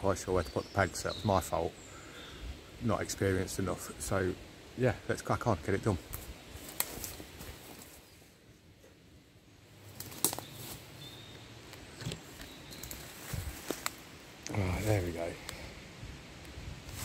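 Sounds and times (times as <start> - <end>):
footsteps through undergrowth: 6.1 - 8.2, 9.8 - 15.3.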